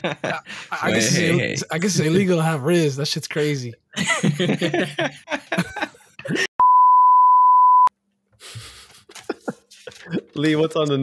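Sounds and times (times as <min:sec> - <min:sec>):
high-pitched censor bleep: 0:06.6 - 0:07.9.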